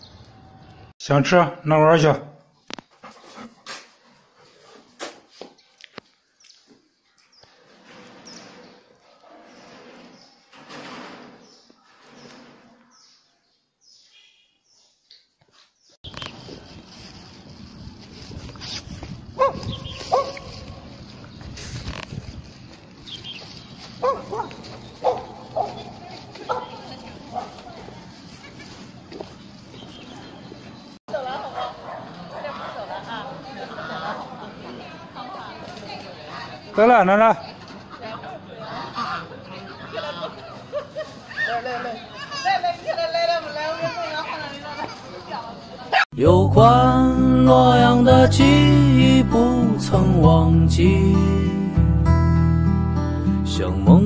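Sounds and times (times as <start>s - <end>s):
soft shuffling: 15.5s - 30.9s.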